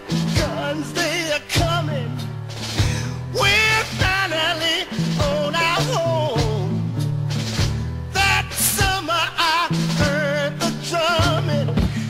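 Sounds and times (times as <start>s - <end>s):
live soul-rock band music: 0.0s - 12.0s.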